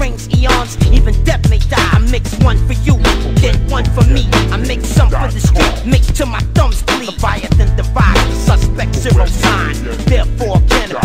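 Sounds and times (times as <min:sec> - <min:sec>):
man rapping over a beat: 0:00.0 - 0:11.0
deep bass kicks falling in pitch: 0:00.4 - 0:10.6.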